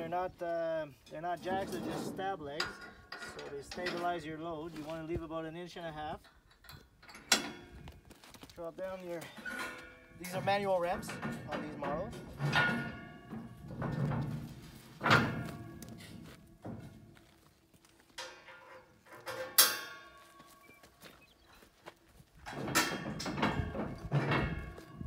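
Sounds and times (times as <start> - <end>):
metal ramps clanking: 1.1 - 4.9, 6.2 - 8.0, 9.1 - 20.8, 22.4 - 25.0.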